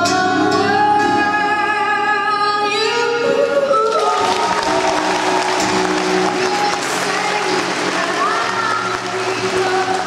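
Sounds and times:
slow song: 0:00.0 - 0:10.0
audience applauding: 0:03.8 - 0:10.0.

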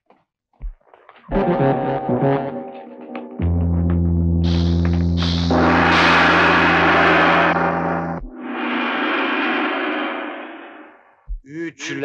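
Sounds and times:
deep gong-like ringing: 0:03.4 - 0:08.6
loud noise crash: 0:04.5 - 0:11.2
soft rushing sound: 0:05.5 - 0:11.2.

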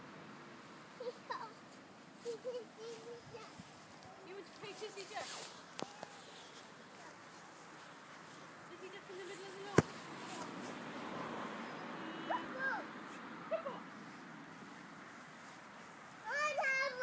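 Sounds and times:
football kicked on grass: 0:09.6 - 0:10.6.

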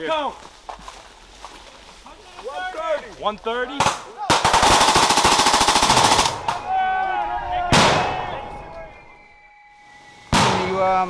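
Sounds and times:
machine gun firing burst: 0:04.4 - 0:06.4
loud gunshot: 0:07.7 - 0:08.2, 0:10.3 - 0:10.7.

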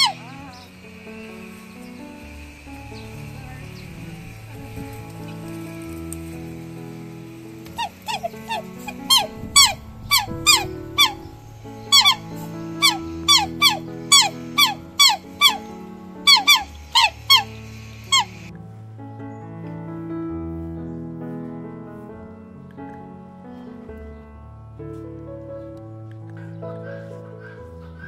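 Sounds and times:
swans calling: 0:00.0 - 0:18.5
background music: 0:00.0 - 0:28.0.

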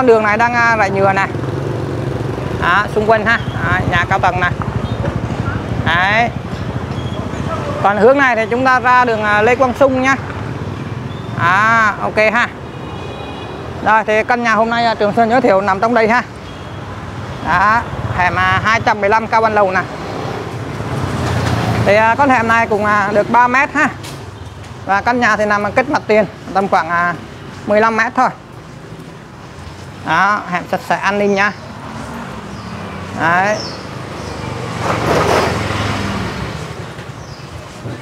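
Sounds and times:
road traffic rumble: 0:00.0 - 0:38.0
vehicle passing: 0:00.0 - 0:38.0.

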